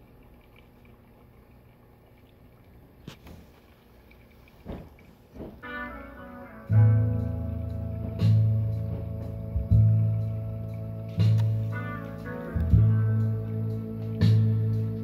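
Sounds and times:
song from jukebox speaker: 5.6s - 15.0s.

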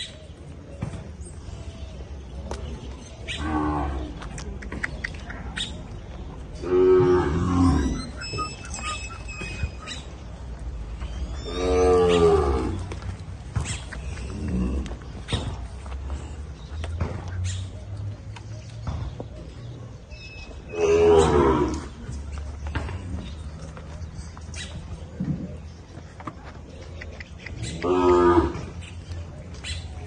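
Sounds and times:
cows mooing: 6.6s - 10.1s, 11.4s - 13.0s, 20.7s - 22.0s, 27.8s - 28.8s.

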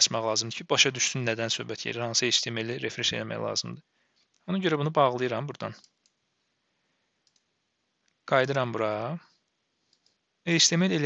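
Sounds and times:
faint computer mouse clicks: 5.8s - 6.2s, 7.2s - 8.2s, 9.4s - 10.2s.

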